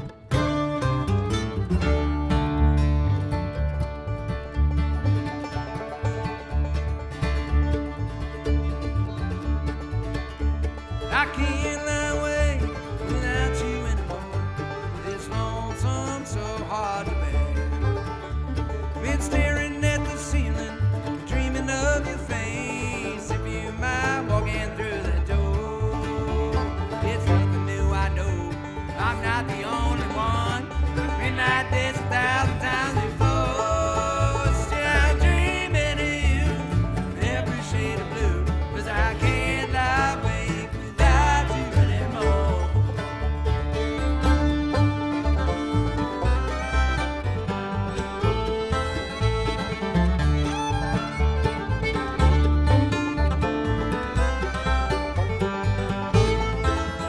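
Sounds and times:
bluegrass string band playing: 0:00.0 - 0:57.0
upright bass notes pulsing: 0:00.0 - 0:57.0.

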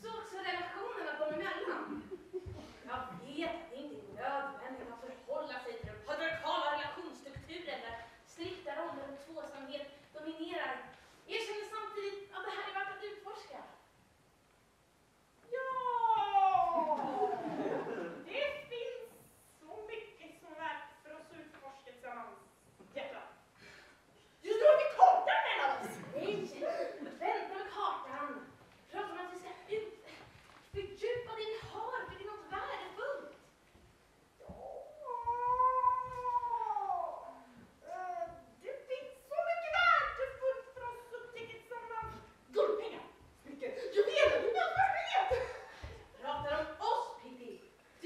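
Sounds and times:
high voice wailing cry: 0:34.4 - 0:38.5.

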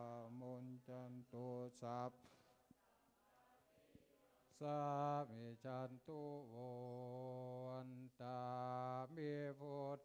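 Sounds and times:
monks chanting in unison: 0:00.0 - 0:10.0.

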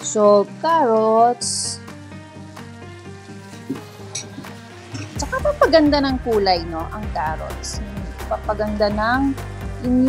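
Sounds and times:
vegetables sizzling in oil: 0:00.0 - 0:09.9
background music: 0:00.0 - 0:10.0.

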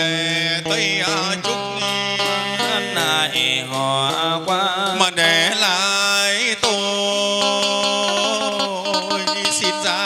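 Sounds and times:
slow funeral band music: 0:00.0 - 0:10.0.

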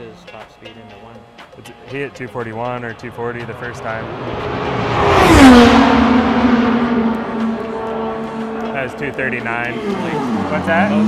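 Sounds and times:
race car passing at full speed: 0:02.9 - 0:11.0.

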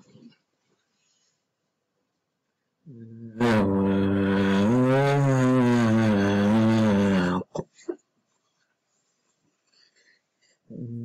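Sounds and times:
man chanting long vowel: 0:02.9 - 0:07.4.

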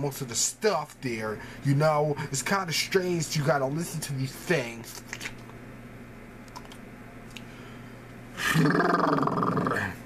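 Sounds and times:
man groaning roughly: 0:08.4 - 0:10.0.

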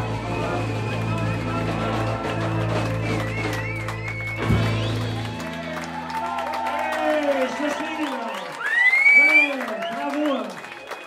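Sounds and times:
live band with electric guitar: 0:00.0 - 0:11.0.

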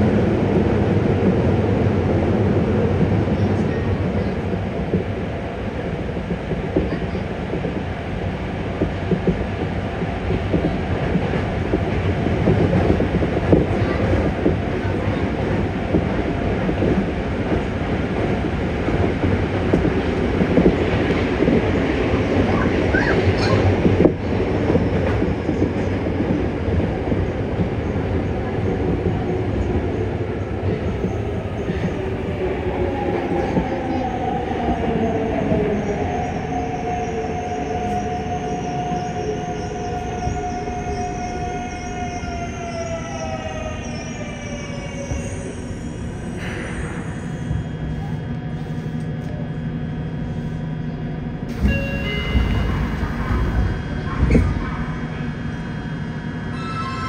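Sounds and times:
train wheels rumbling on rail: 0:00.0 - 0:57.0
train inverter whine: 0:26.8 - 0:57.0.

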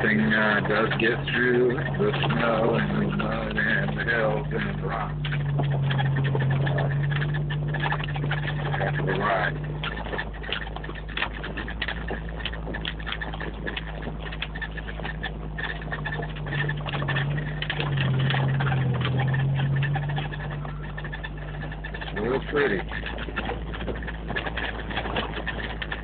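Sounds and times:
body rattles and knocks: 0:00.0 - 0:26.0
engine drone: 0:00.0 - 0:26.0.

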